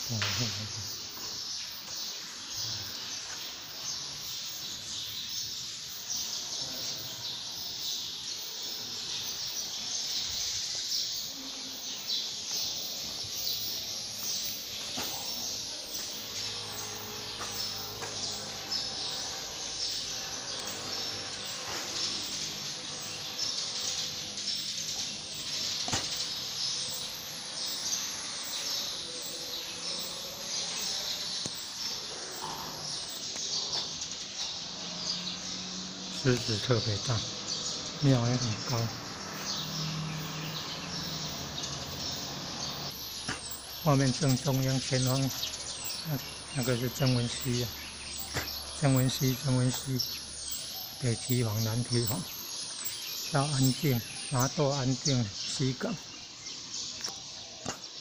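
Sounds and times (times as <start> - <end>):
birds chirping: 0.0 - 58.0.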